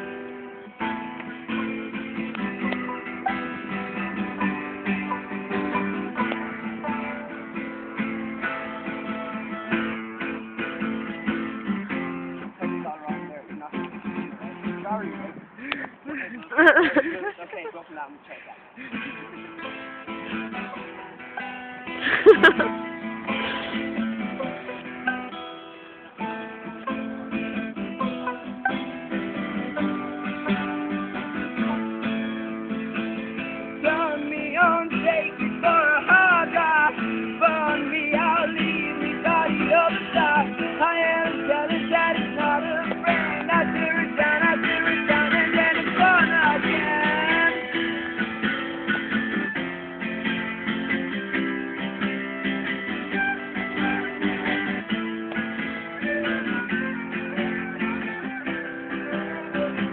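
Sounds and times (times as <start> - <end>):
fiddle melody: 0.0 - 17.2, 18.8 - 59.9
acoustic guitar strumming: 0.0 - 17.3, 18.8 - 59.9.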